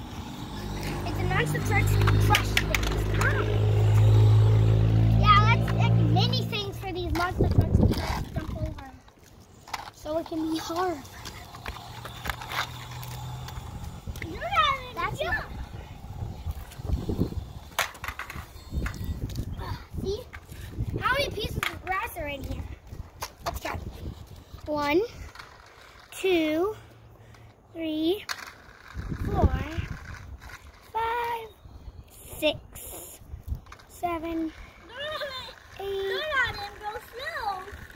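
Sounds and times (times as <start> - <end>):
toy truck wheels scraping concrete: 0.0 - 37.9
child counting aloud: 0.8 - 3.6, 5.1 - 9.0, 14.2 - 15.8, 20.9 - 22.7, 26.1 - 26.8, 30.9 - 33.2, 33.9 - 37.8.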